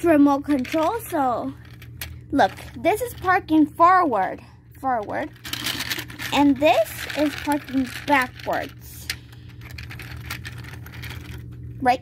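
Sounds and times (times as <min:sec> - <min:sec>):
steady low hum: 0:00.0 - 0:12.0
plastic toy vehicles clicking: 0:05.4 - 0:11.4.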